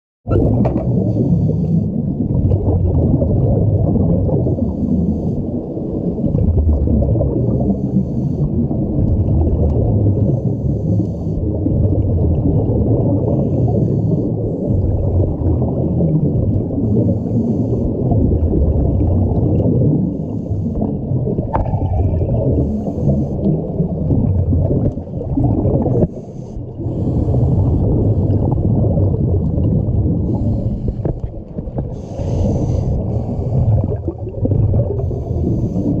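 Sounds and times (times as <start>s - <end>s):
muffled underwater low rumble: 0.3s - 36.0s
regulator bubbling hiss: 9.8s - 36.0s.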